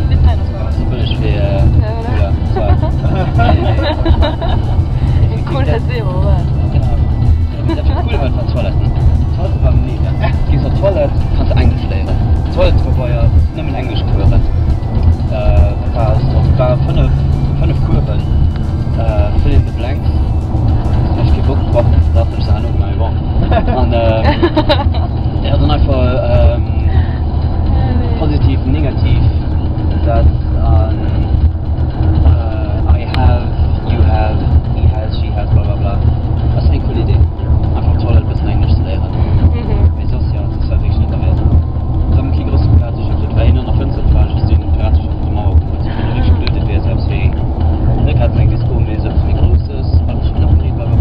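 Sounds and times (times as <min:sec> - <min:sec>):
voices: 0:00.0 - 0:31.4, 0:32.2 - 0:51.0
music: 0:00.0 - 0:51.0
vehicle rumble inside cabin: 0:00.0 - 0:51.0.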